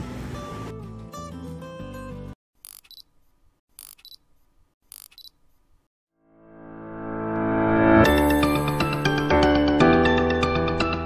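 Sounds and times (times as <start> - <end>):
camera shutter double clicks: 4.9 - 5.3
background music: 6.4 - 11.0.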